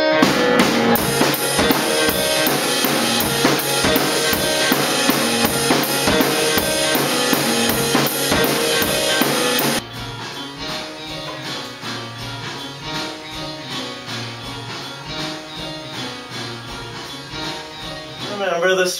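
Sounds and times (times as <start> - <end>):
band music with drum kit: 0.0 - 18.6.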